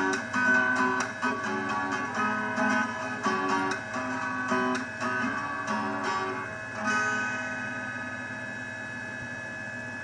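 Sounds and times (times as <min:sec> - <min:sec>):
guitar strummed chords: 0:00.0 - 0:08.5
steady hum: 0:00.0 - 0:10.0.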